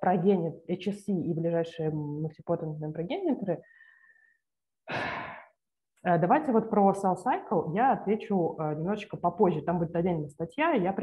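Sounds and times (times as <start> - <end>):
person breathing: 3.6 - 5.6.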